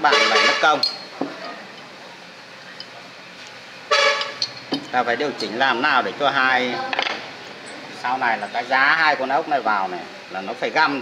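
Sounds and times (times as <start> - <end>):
vehicle horn: 0.0 - 0.8, 3.9 - 4.4.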